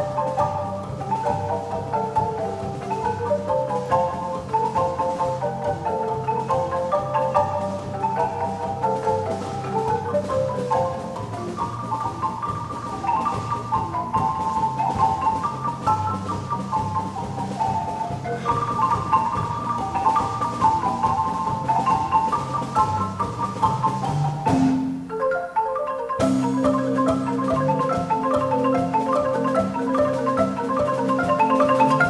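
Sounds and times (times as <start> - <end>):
marimba bass line: 0.0 - 32.0
marimba melody: 0.0 - 32.0.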